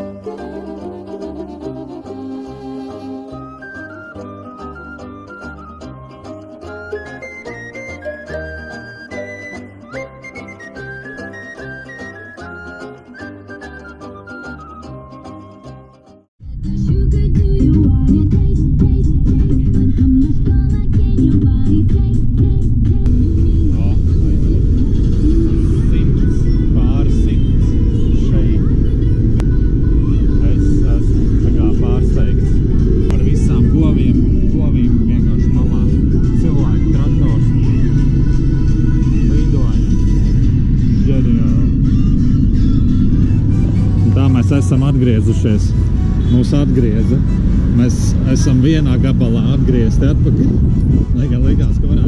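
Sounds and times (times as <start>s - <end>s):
music: 0.0s - 52.0s
car engine and road noise: 16.4s - 52.0s
voices: 23.1s - 43.3s, 43.9s - 52.0s.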